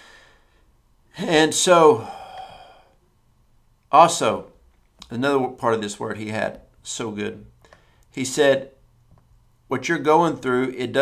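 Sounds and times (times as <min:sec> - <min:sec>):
man speaking: 0:01.1 - 0:02.4, 0:03.9 - 0:07.5, 0:08.1 - 0:08.8, 0:09.7 - 0:11.0
man sighing: 0:01.1 - 0:03.0.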